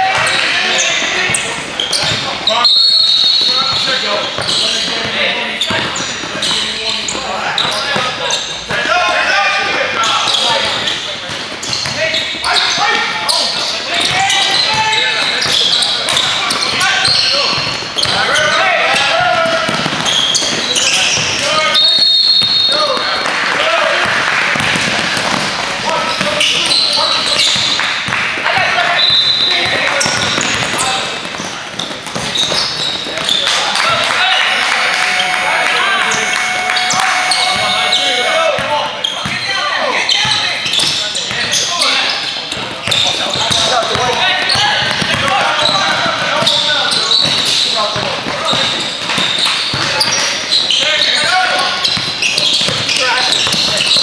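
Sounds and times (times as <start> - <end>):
players calling out: 0.0 - 54.0
sneakers squeaking: 0.0 - 54.0
basketball dribbling: 3.3 - 8.9, 10.0 - 12.8, 13.6 - 28.3, 29.0 - 33.5, 36.0 - 39.5, 42.5 - 50.8, 51.7 - 54.0.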